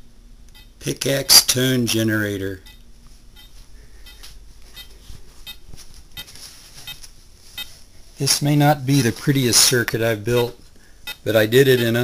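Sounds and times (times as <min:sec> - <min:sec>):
faint electronic chirps: 0:02.5 - 0:05.6.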